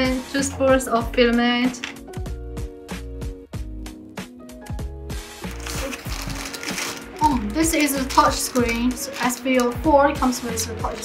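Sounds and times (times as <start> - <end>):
background music with beat: 1.7 - 11.0
plastic bag crinkling: 5.5 - 9.8.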